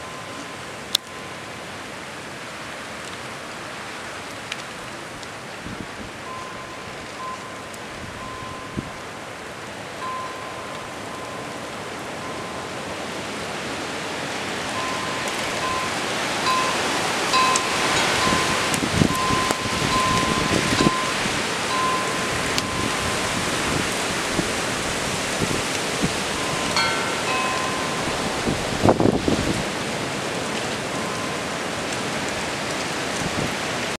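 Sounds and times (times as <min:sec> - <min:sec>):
blizzard wind gusting: 0:07.9 - 0:33.9
faint ringing tone: 0:10.0 - 0:12.8, 0:17.4 - 0:23.2.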